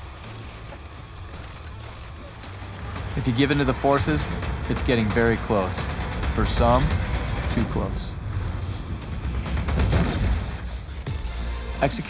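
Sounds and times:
sharp hits: 0:03.3 - 0:11.6.

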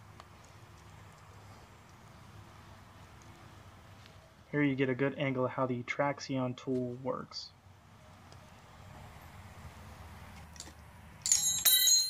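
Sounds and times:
metal wrenches clinking: 0:11.2 - 0:12.0.

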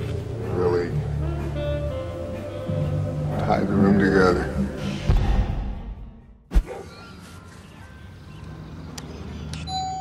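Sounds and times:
doorbell chime: 0:09.7 - 0:10.0.

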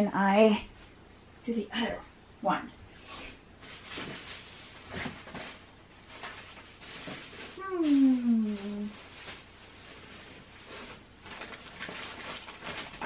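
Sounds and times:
faint rustling: 0:02.9 - 0:13.0.

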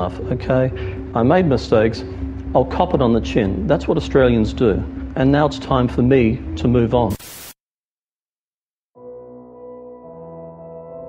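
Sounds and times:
man's recorded voice: 0:00.0 - 0:07.2
static hiss: 0:07.1 - 0:07.6.

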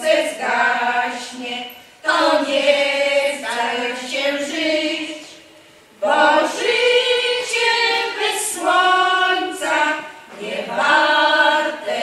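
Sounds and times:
women's choir singing unaccompanied: 0:00.0 - 0:12.0.

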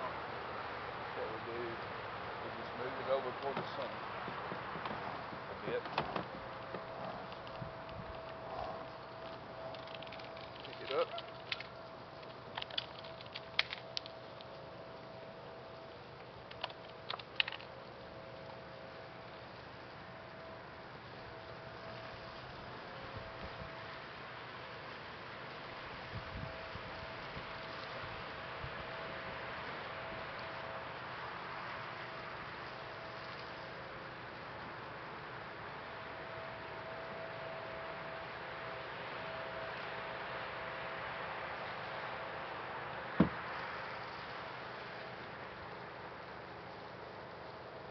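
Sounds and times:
faint steady hum: 0:00.0 - 0:47.9.

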